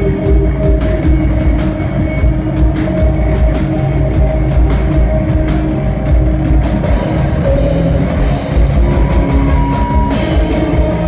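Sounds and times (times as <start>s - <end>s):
electric guitars and bass: 0.0s - 11.0s
drum kit hitting sharply: 6.8s - 11.0s.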